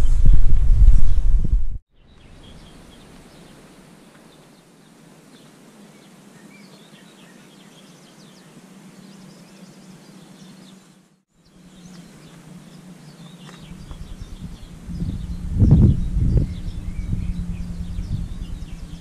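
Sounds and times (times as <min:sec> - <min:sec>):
small birds chirping: 0:01.9 - 0:19.0
steady low hum: 0:11.3 - 0:19.0.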